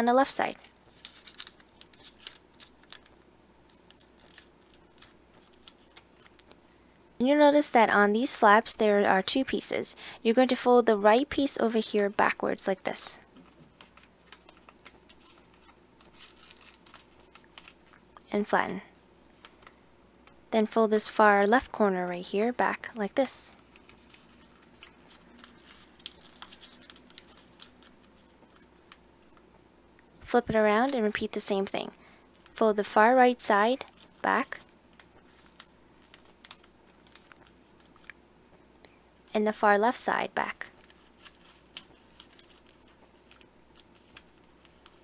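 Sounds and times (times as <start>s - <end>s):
paper rustling and crinkling: 0.6s - 6.6s, 12.9s - 19.8s, 23.5s - 29.4s, 33.7s - 38.1s, 40.6s - 45.0s
paper clicks: 0.9s - 3.1s, 3.7s - 6.6s, 13.4s - 18.1s, 23.6s - 29.0s, 34.9s - 38.2s, 40.8s - 45.0s.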